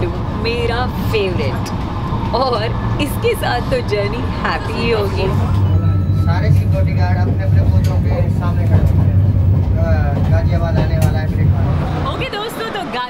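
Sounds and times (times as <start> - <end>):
people talking: 0.0 - 1.7, 2.3 - 13.0
train running rumble: 0.0 - 13.0.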